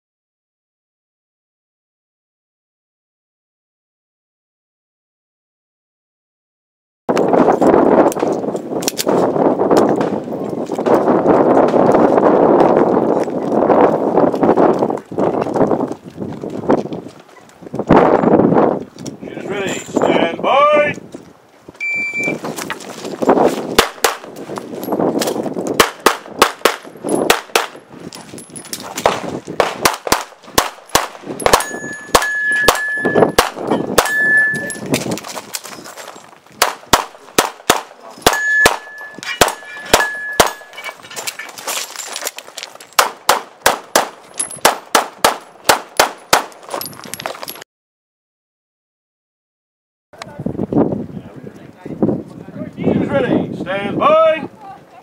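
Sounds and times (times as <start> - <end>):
shot timer beep: 21.8 - 22.4, 31.6 - 33.4, 34.0 - 34.8
pistol shots: 23.8 - 24.3, 25.8 - 27.8, 29.0 - 34.2, 36.6 - 40.7, 43.0 - 46.6
steel targets ringing: 31.4 - 34.9, 38.2 - 41.0.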